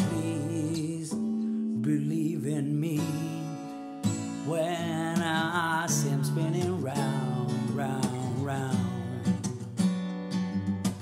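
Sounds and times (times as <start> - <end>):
acoustic guitar strummed: 0.0 - 11.0.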